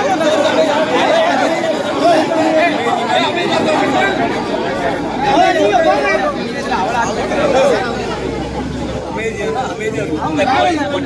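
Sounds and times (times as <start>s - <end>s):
men talking over one another: 0.0s - 11.0s.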